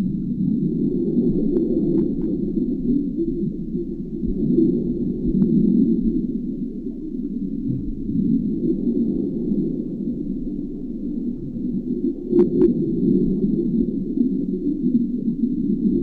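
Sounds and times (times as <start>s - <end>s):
muffled underwater rumble: 0.0s - 16.0s.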